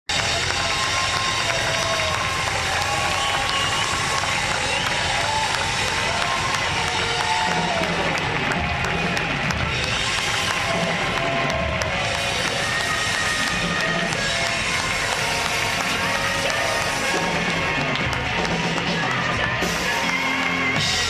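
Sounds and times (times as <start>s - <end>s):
band playing worship music: 0.1s - 21.0s
congregation clapping along: 0.1s - 21.0s.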